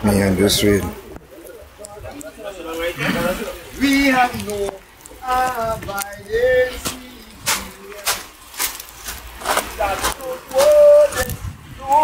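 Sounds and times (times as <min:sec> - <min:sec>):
indistinct voices talking: 0:00.0 - 0:12.0.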